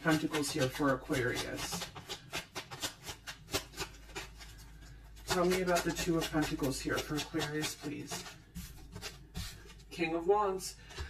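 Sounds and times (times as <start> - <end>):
cards being shuffled: 0.0 - 9.9.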